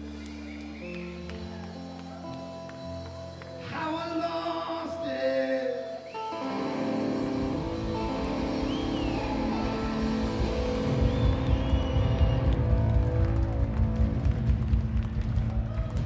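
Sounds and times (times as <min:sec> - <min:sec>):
electric guitars and bass: 0:00.0 - 0:16.0.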